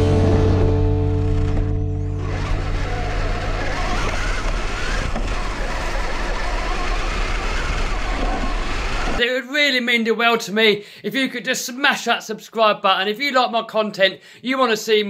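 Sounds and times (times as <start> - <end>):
rock music: 0.0 - 5.4
toy truck motor and tyres rushing: 2.2 - 9.2.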